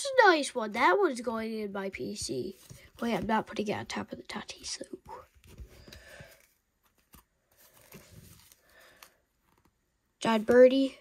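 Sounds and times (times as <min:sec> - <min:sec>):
paper cards rustling and sliding: 0:02.5 - 0:03.5, 0:05.0 - 0:09.8.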